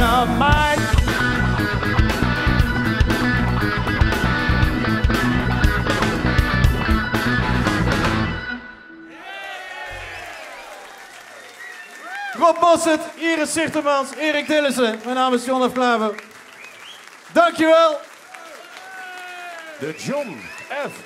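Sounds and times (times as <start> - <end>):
drums: 0.0 - 8.5
bass guitar: 0.0 - 8.7
electric guitar: 0.0 - 9.0
organ: 0.0 - 9.0
audience applause and cheering: 9.0 - 21.0.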